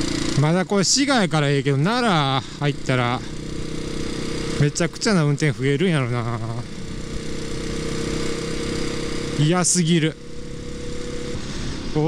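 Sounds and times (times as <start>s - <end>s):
motorcycle engine running: 0.0s - 12.0s
road and wind noise: 0.0s - 12.0s.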